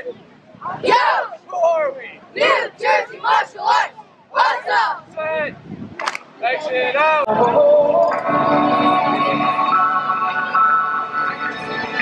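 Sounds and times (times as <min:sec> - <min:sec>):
group shouting in unison: 0:00.7 - 0:01.4, 0:02.4 - 0:05.0.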